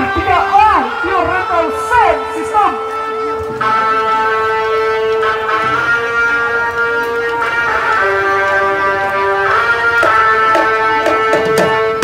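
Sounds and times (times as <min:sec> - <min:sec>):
wind instruments sustained notes: 0:00.0 - 0:12.0.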